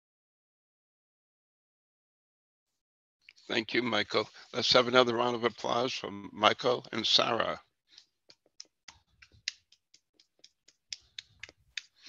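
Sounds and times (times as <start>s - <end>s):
scattered applause through video call: 3.3s - 12.0s.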